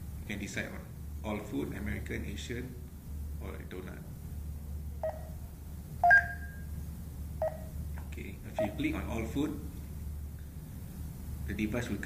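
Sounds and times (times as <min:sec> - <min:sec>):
touchscreen beeps: 0:05.0 - 0:05.3, 0:06.0 - 0:06.6, 0:07.4 - 0:07.7, 0:08.6 - 0:08.8.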